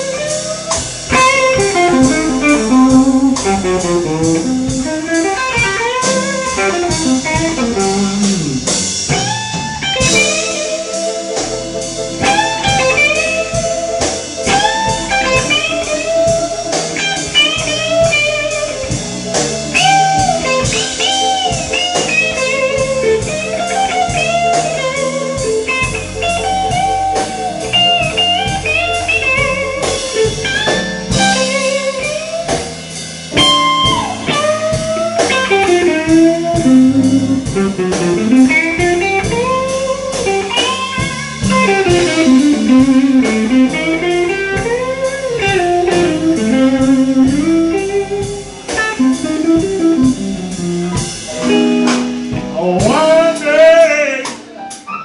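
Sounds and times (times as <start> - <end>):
band playing: 0.0 - 55.0
blues electric guitar solo: 0.0 - 55.0.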